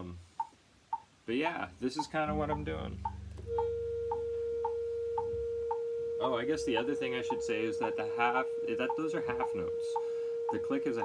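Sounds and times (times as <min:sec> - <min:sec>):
metronome clicking: 0:02.0 - 0:11.0
steady electronic drone tone: 0:02.3 - 0:11.0.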